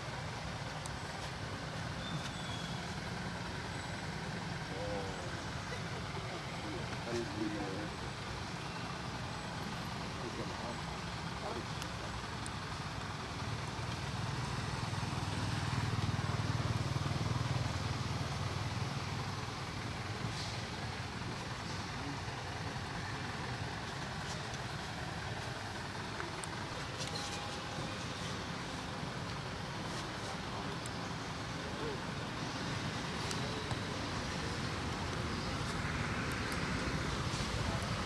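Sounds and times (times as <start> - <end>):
outdoor background noise: 0.0 - 38.0
passing vehicle engine rumble: 0.0 - 38.0.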